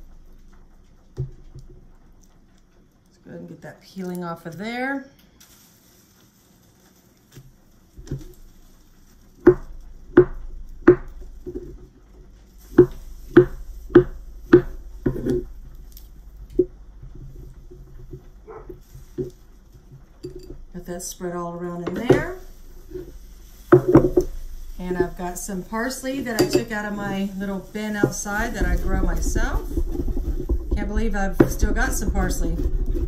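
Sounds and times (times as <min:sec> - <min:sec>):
knife knocking on wooden board: 0:12.8 - 0:15.5.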